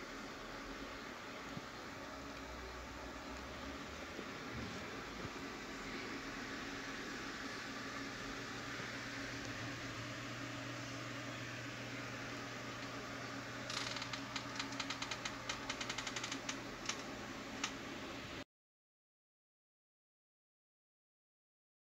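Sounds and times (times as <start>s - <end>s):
rapid sharp clicks: 13.7s - 17.8s.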